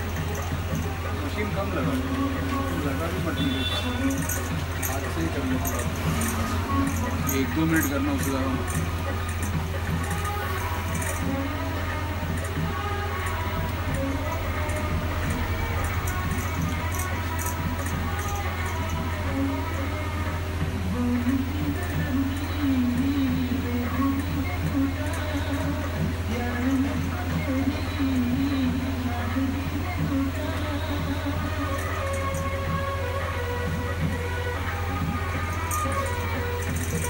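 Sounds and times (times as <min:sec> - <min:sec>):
background music: 0:00.0 - 0:37.0
electric massager humming: 0:00.0 - 0:37.0.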